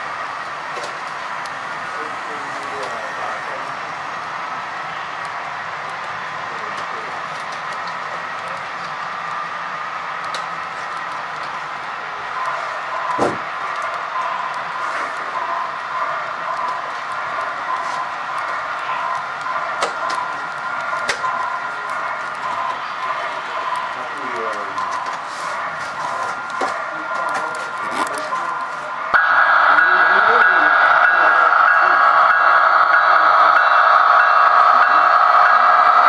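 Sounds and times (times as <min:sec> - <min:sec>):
model train cars rolling on track: 0:00.0 - 0:36.0.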